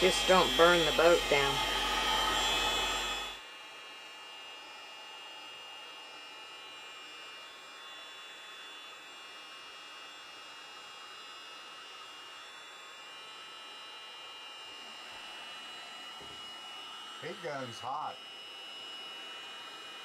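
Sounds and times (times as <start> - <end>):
heat gun blowing hiss: 0.0 - 3.4
loud hum: 0.0 - 3.4.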